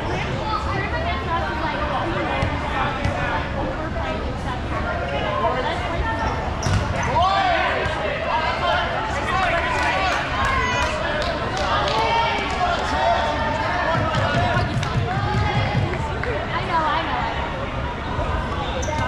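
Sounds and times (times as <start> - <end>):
balls bouncing on gym floor: 13.9 - 16.0.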